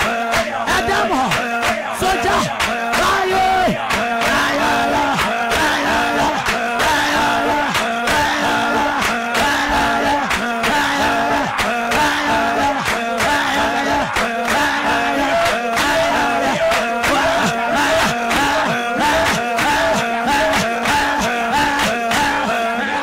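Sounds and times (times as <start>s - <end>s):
voices shouting in prayer: 0.0s - 23.0s.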